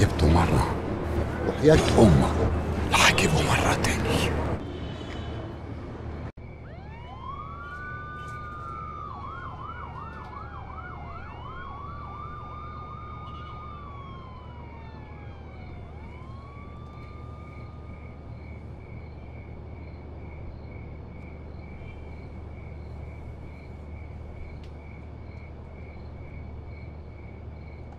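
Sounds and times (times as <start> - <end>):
police sirens wailing and yelping: 6.6 - 18.7.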